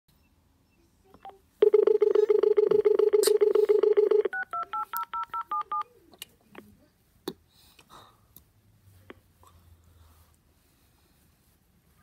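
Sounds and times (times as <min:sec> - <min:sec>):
fluttering dial tone: 0:01.6 - 0:04.8.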